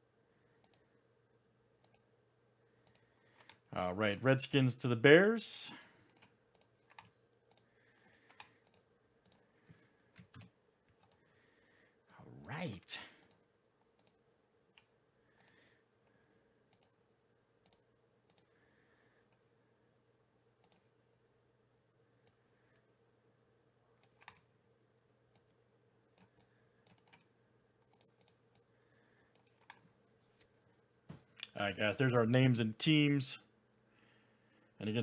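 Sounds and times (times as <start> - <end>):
computer mouse clicks: 0.6 - 0.9, 1.8 - 2.1, 2.8 - 3.6, 5.8 - 11.3, 13.2 - 15.6, 16.7 - 17.0, 17.6 - 18.5, 20.6 - 20.9, 24.0 - 24.5, 26.2 - 28.7, 29.3 - 29.9.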